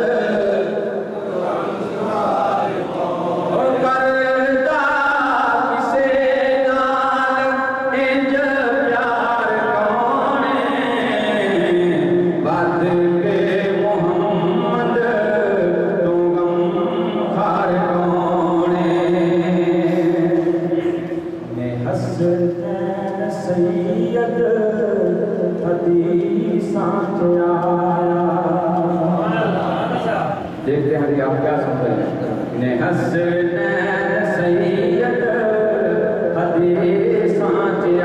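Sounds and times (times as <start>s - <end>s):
man singing devotional chant: 0.0s - 32.0s, 32.6s - 38.0s.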